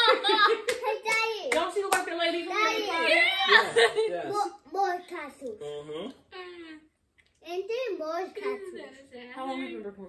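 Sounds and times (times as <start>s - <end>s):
laughter: 0.0s - 1.0s
hand claps: 0.5s - 2.2s
excited high voices: 2.6s - 3.8s.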